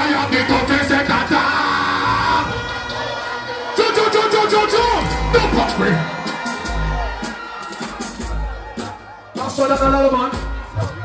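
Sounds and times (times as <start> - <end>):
amplified vocal over beat: 0.0 - 11.0
crowd yelling: 0.0 - 11.0
dancehall music over pa: 0.0 - 11.0.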